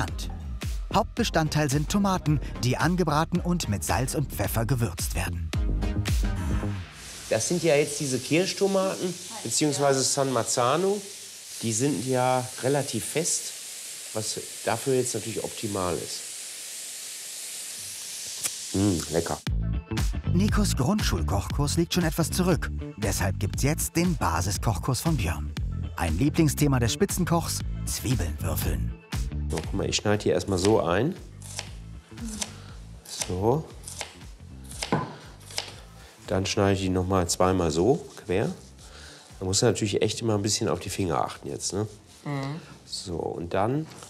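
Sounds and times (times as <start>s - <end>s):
tomatoes sizzling in a frying pan: 6.9s - 19.5s
knife cutting onion on wooden board: 31.4s - 35.8s.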